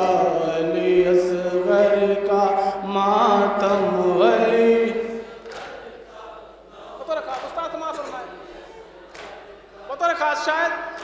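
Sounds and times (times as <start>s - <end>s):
man chanting a lament: 0.0s - 5.2s.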